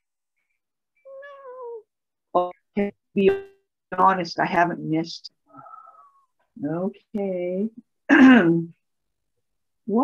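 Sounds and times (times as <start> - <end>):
cat meowing: 1.1 - 1.9.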